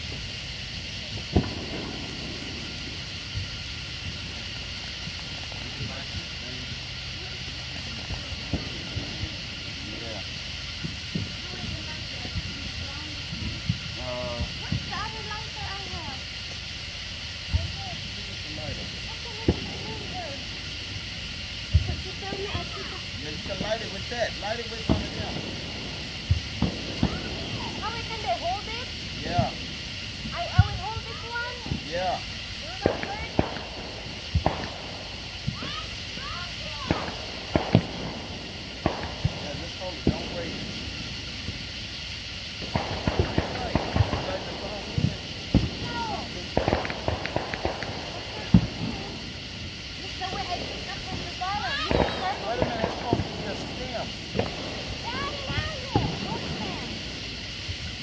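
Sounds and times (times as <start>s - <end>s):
sharp pops and crackles: 0.0s - 58.0s
sparklers hissing: 0.0s - 58.0s.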